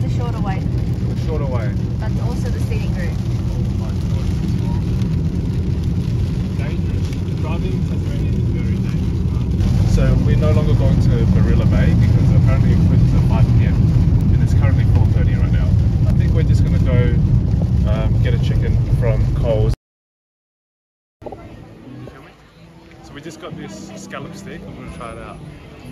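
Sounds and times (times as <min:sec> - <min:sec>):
road and tyre rumble: 0:00.0 - 0:19.8, 0:21.2 - 0:25.9.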